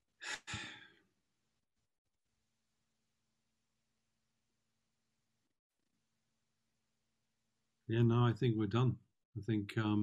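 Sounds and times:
person sighing: 0.2 - 1.0.

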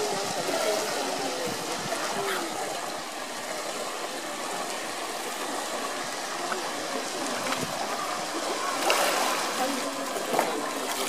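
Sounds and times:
faint voices: 0.0 - 11.0
rushing water: 0.0 - 11.0.

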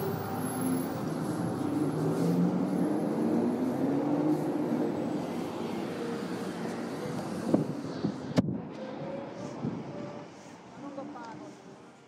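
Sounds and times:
passing vehicle engine hum: 0.0 - 10.8
street noise: 0.0 - 12.0.

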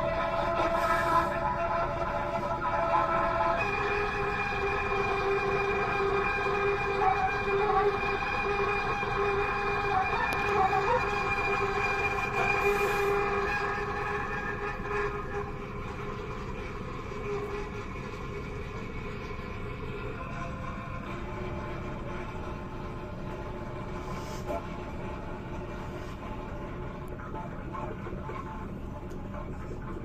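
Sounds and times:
soprano saxophone long notes: 0.0 - 8.1.

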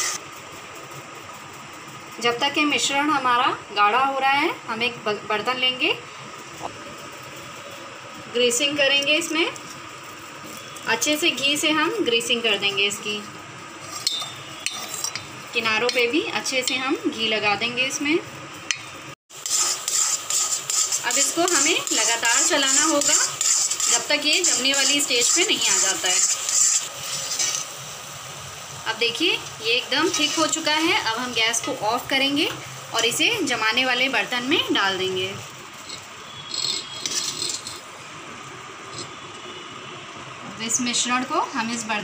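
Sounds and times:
spatula scraping a sizzling pan: 0.0 - 0.2, 13.1 - 15.3, 19.3 - 28.0, 29.9 - 31.9, 35.4 - 37.9
soft sizzle: 0.0 - 42.0.

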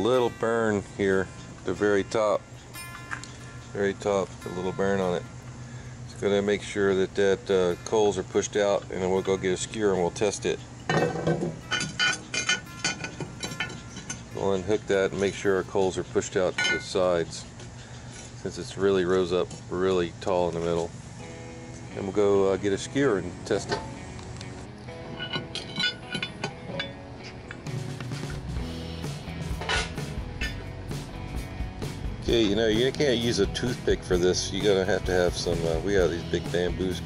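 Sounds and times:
background music: 0.0 - 16.0, 21.1 - 37.0
metal lid clinking: 10.9 - 14.3, 16.6 - 17.0, 25.1 - 27.6, 29.6 - 30.6.

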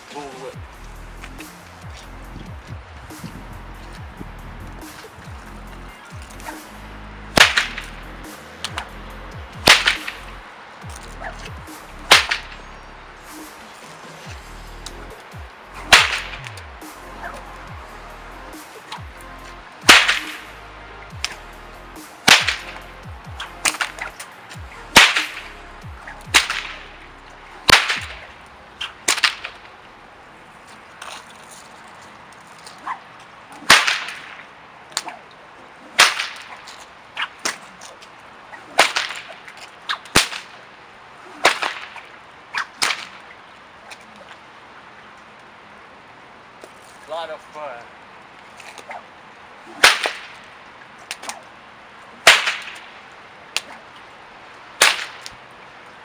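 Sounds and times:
whip cracking: 1.2 - 12.6, 13.3 - 17.5, 18.5 - 19.2, 19.8 - 21.4, 22.0 - 26.9, 27.6 - 29.7, 32.6 - 35.2, 35.9 - 40.6, 41.4 - 43.3, 49.8 - 50.5, 52.2 - 52.9, 53.5 - 53.9, 54.8 - 55.4.

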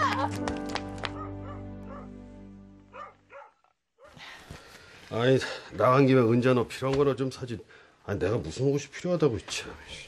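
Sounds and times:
background music: 0.0 - 3.6
dog barking: 1.2 - 2.1, 2.9 - 4.2.

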